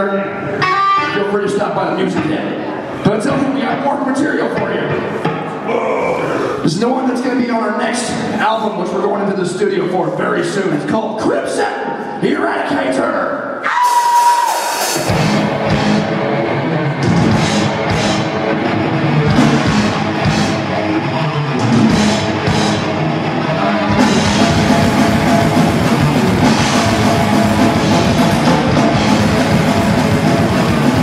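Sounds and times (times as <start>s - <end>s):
distorted electric guitars: 0.3s - 3.0s, 13.7s - 31.0s
drum kit with cymbal crashes: 13.8s - 16.1s, 23.9s - 31.0s
bass guitar: 15.0s - 31.0s.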